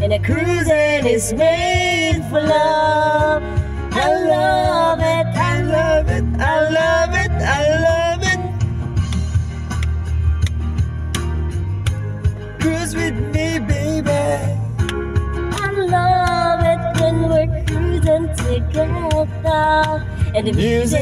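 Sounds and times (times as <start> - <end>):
man and woman singing: 0.0 - 8.5, 12.6 - 14.7, 20.3 - 21.0
backing music with guitar: 0.0 - 21.0.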